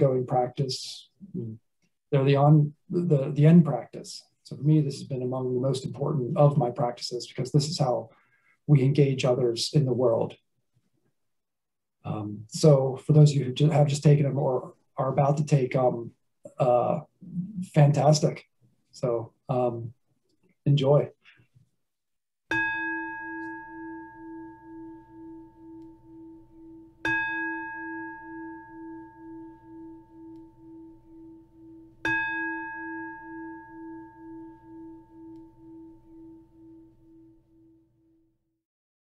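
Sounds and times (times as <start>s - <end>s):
singing bowl ringing: 22.5s - 38.3s.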